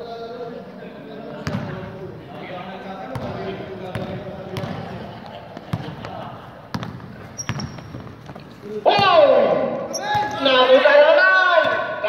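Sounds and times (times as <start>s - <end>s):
man's loud drawn-out voice: 8.8s - 12.0s.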